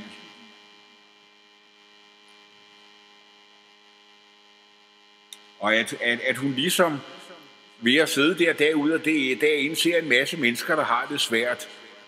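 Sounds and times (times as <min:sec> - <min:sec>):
faint electrical mains hum: 0:00.0 - 0:12.0
room echo of speech: 0:05.4 - 0:12.0.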